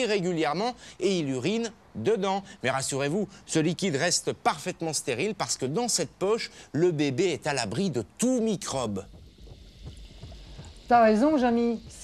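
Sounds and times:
water lapping in a glass tank: 7.4 - 12.0.

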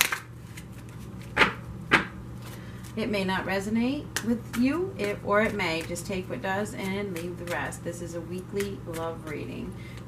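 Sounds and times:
cards knocked together: 1.2 - 2.1.

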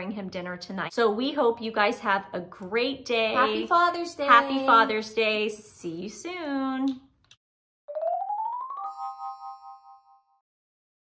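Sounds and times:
bright chime: 8.0 - 10.4.

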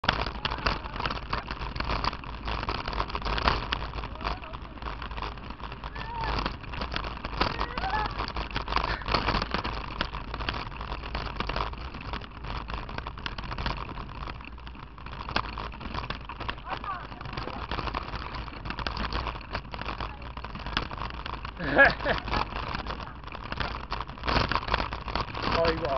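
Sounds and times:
bicycle rattling over gravel: 0.0 - 25.9
tyres rumbling on gravel: 0.0 - 25.9.

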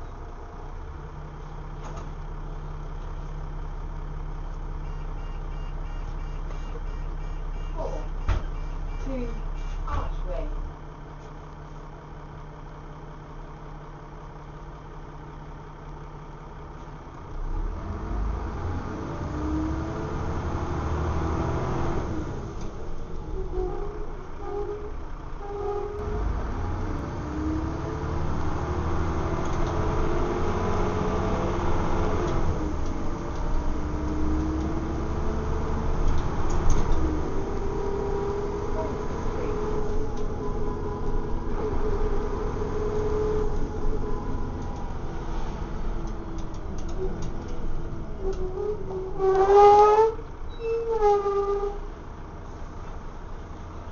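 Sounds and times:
bus diesel engine: 0.0 - 53.9.

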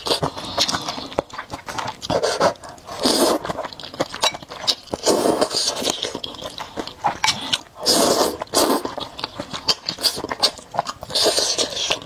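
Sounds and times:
slurping noodles: 0.0 - 12.0
wet chewing clicks: 0.0 - 12.0.

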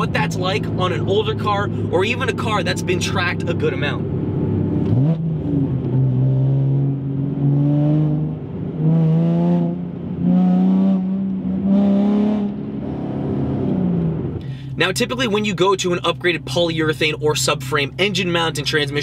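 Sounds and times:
car engine revving: 0.0 - 19.0.

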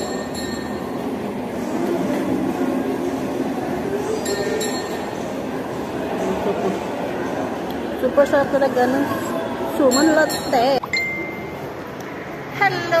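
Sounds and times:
tableware clinking: 0.0 - 0.9, 4.2 - 5.2
shopping mall hubbub: 0.0 - 13.0.

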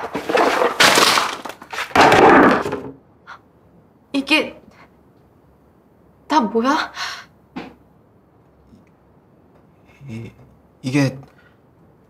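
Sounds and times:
paper and cardboard handling: 0.0 - 2.3.

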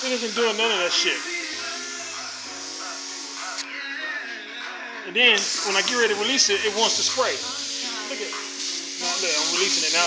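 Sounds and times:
airbrush hissing air: 0.0 - 3.7, 5.4 - 10.0
background music: 0.0 - 10.0
background voices: 0.0 - 10.0.

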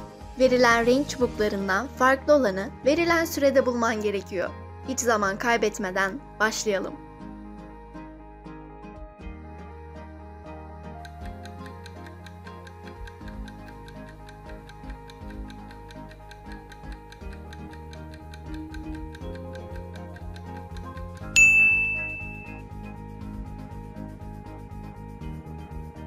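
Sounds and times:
background music: 0.0 - 26.0
countdown timer ticking: 11.0 - 22.7
loud bell-like ding: 21.4 - 22.6.

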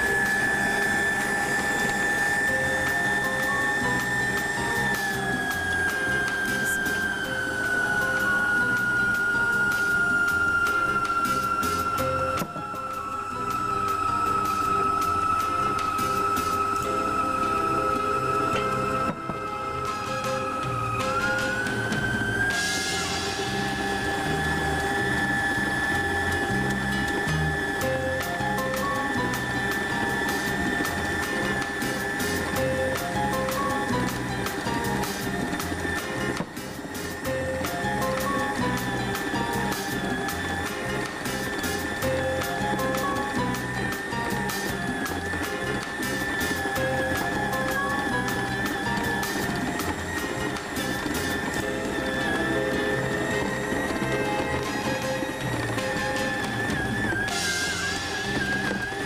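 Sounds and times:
background music: 0.0 - 59.0
stand mixer motor whining: 0.0 - 59.0.

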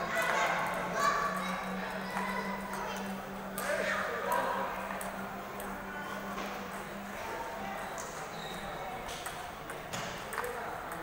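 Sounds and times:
voices in a hall: 0.0 - 11.0
table tennis ball clicking: 9.1 - 11.0.

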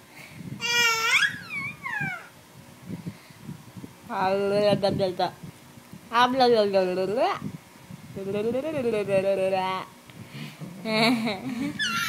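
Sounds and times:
baby squealing: 0.6 - 2.3, 11.8 - 12.0.

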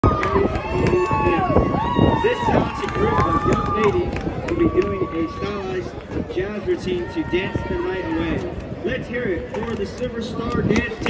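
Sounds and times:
crowd cheering and calling out: 0.0 - 11.0.

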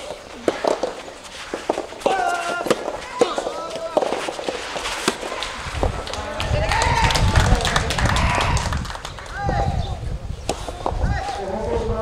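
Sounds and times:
rackets hitting soft ball: 0.0 - 7.4, 10.4 - 11.4.

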